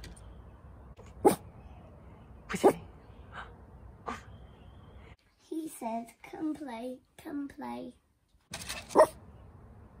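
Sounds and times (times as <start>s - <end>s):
small dog barking: 8.9s - 9.2s.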